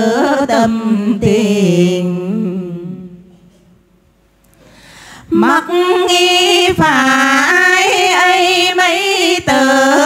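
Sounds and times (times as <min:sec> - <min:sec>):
women singing unaccompanied: 0:00.0 - 0:03.2, 0:05.3 - 0:10.0.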